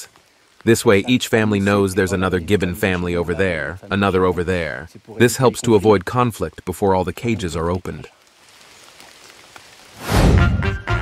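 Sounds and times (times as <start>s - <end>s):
rain falling on foliage: 0.0s - 10.3s.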